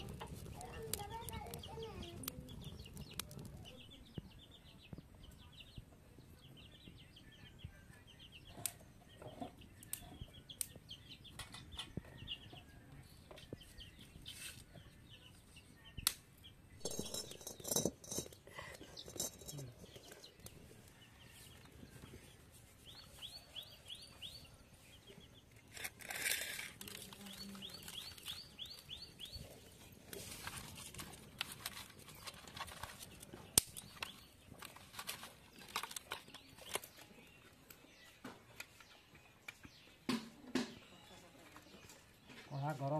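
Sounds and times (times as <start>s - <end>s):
small birds chirping: 0.0s - 42.9s.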